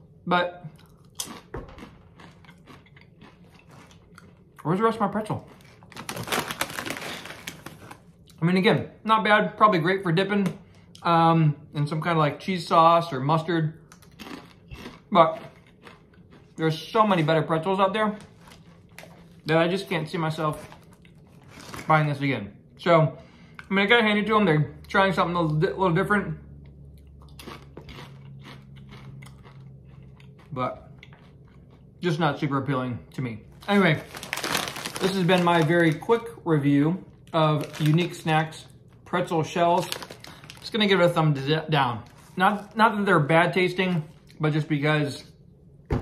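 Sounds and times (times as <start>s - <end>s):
chewing crunchy pretzels: 0.6s - 8.4s, 13.9s - 22.0s, 26.6s - 32.4s, 33.6s - 36.4s, 37.1s - 41.2s
plastic snack bag crinkling: 0.8s - 8.3s, 16.7s - 22.0s, 33.5s - 36.3s, 37.3s - 43.1s.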